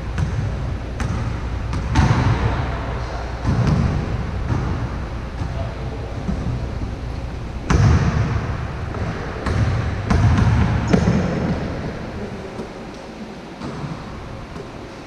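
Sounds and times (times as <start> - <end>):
basketball bouncing on court: 0.0 - 12.7
low rumbling background: 0.0 - 15.0.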